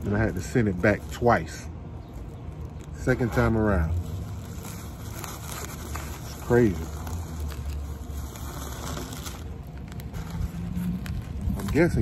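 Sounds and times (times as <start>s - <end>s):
bubble wrap crinkling: 0.0s - 12.0s
low steady hum: 0.0s - 12.0s.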